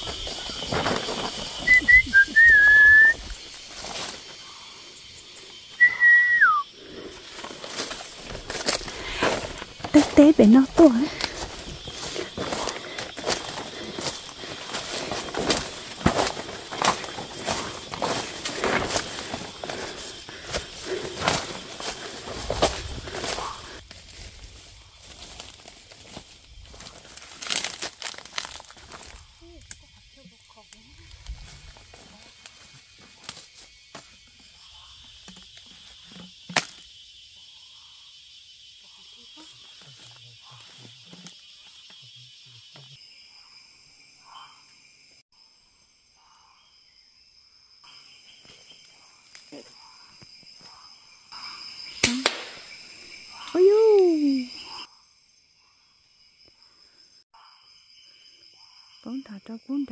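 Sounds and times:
insects buzzing high-pitched: 0.0s - 59.9s
rustles in dry leaf litter: 7.0s - 29.4s
sharp crack: 52.0s - 52.8s.

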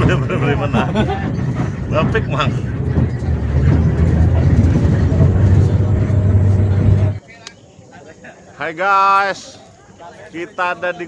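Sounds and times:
vehicle engine drone and road rumble: 0.0s - 7.2s.

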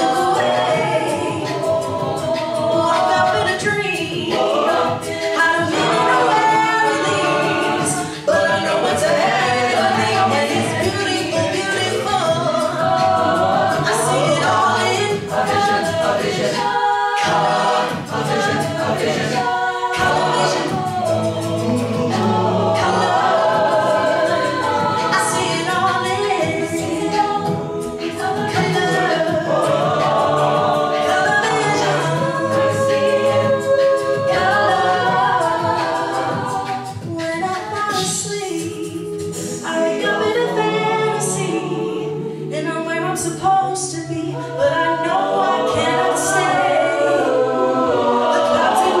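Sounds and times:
backing vocal harmonies: 0.0s - 49.0s
lead vocalist singing: 0.0s - 49.0s
vocal percussion beat: 0.0s - 49.0s.

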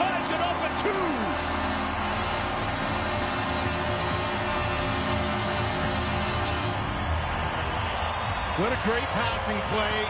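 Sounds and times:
arena celebration music: 0.0s - 10.0s
crowd cheering: 0.0s - 10.0s.

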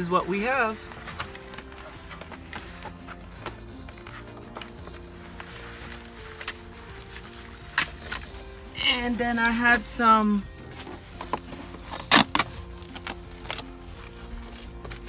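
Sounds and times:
soft background music: 0.0s - 15.0s.

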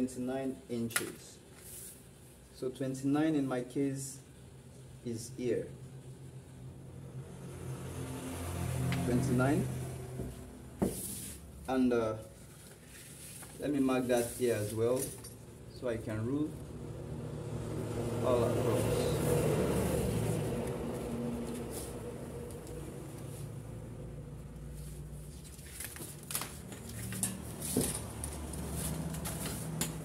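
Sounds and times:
low mechanical hum: 0.0s - 30.0s.

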